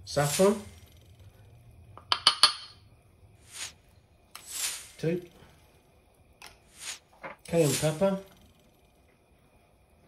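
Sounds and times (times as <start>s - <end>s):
ceramic mortar clinks: 2.0s - 2.8s.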